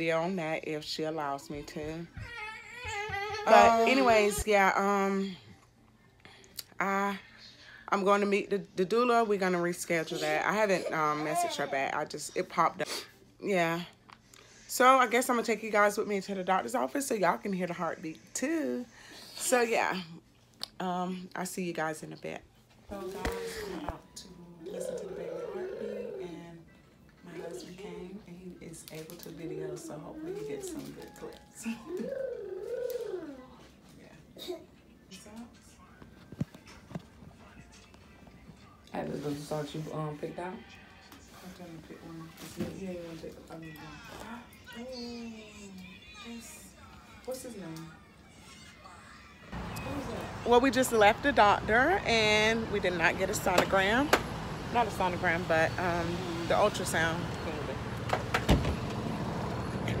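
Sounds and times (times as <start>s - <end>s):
low vehicle engine hum: 49.6s - 60.0s.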